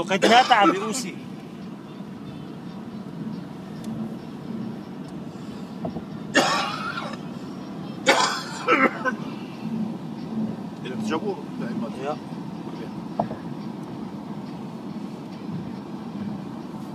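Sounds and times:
car cabin rumble: 0:00.0 - 0:16.9
person clearing throat: 0:06.4 - 0:07.0.

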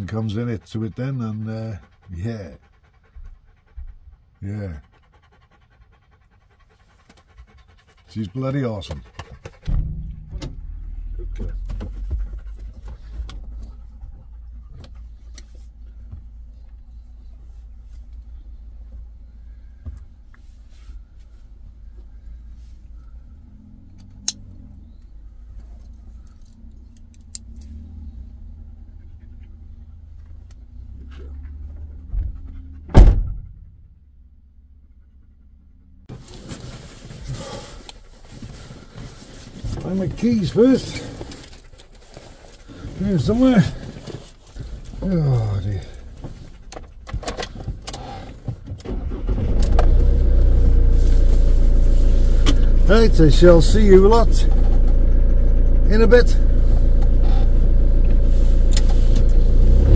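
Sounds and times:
dog panting: 0:00.0 - 0:10.6, 0:11.3 - 0:19.2, 0:27.8 - 0:32.9, 0:37.5 - 0:47.8
van door slamming: 0:09.6 - 0:13.6, 0:32.9 - 0:33.6.

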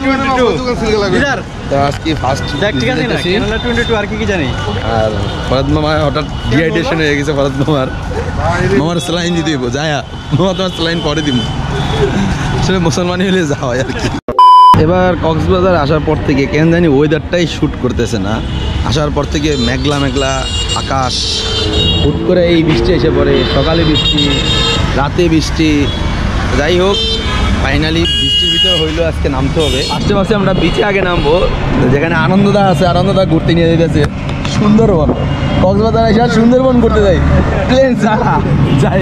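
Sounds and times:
auto-rickshaw motor and road noise: 0:00.0 - 0:14.2, 0:14.8 - 0:39.0
men talking: 0:00.0 - 0:39.0
street traffic rumble: 0:00.0 - 0:39.0
man speaking: 0:14.8 - 0:26.0, 0:27.7 - 0:39.0.

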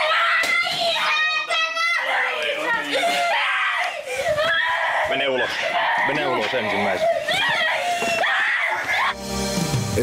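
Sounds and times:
young children screaming and crying: 0:00.0 - 0:09.2.

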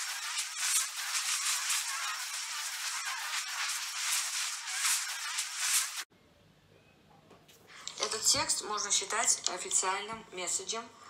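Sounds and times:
sparkler crackling and fizzing: 0:00.0 - 0:06.1.

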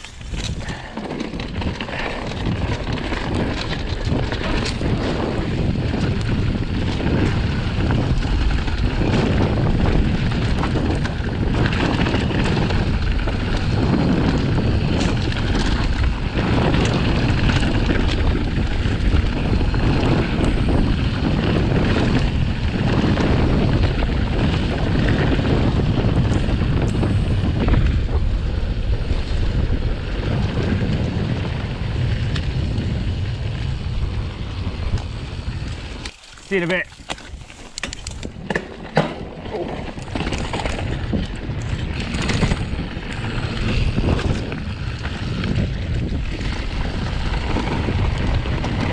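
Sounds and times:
bike clicks and rattles: 0:00.0 - 0:48.9
low rumble of bike tyres: 0:00.0 - 0:48.9
wind buffeting microphone: 0:00.0 - 0:48.9.

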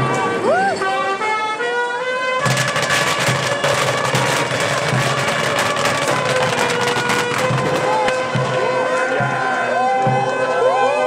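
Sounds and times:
music: 0:00.0 - 0:11.0
fireworks crackling: 0:02.4 - 0:09.0.

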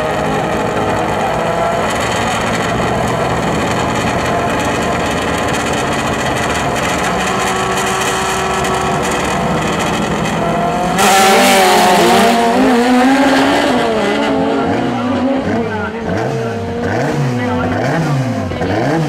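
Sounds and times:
car engine idling loudly: 0:00.0 - 0:19.0.

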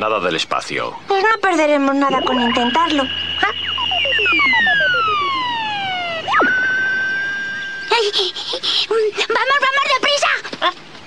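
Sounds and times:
electronic sci-fi beam tones: 0:01.8 - 0:08.6.

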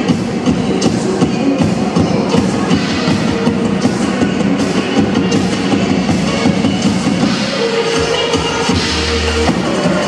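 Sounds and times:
drum kits playing fast groove: 0:00.0 - 0:10.0
music with held notes: 0:00.0 - 0:10.0.

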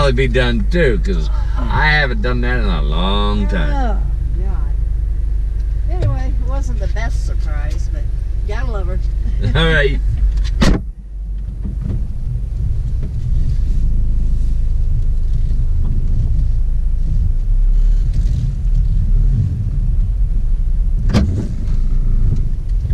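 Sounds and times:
car engine and tyres rumbling: 0:00.0 - 0:22.9
car door shutting: 0:09.5 - 0:12.3, 0:21.0 - 0:22.5.

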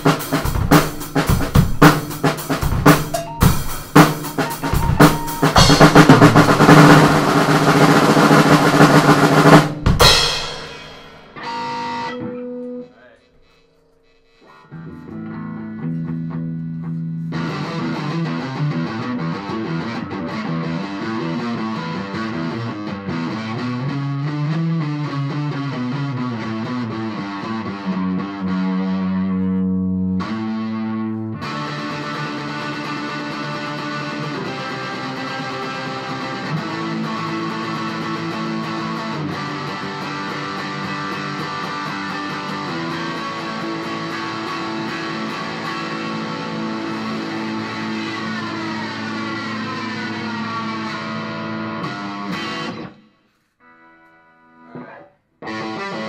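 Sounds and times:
drum kit played hard: 0:00.0 - 0:12.2, 0:31.5 - 0:49.4
cymbal crash ringing: 0:02.8 - 0:08.0, 0:09.6 - 0:12.2
electric guitar solo: 0:03.0 - 0:07.5, 0:10.0 - 0:13.2, 0:14.5 - 0:53.0, 0:53.6 - 0:56.0.

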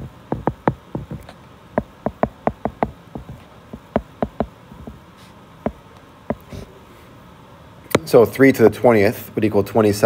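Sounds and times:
stylus tapping on glass screen: 0:00.0 - 0:04.5.

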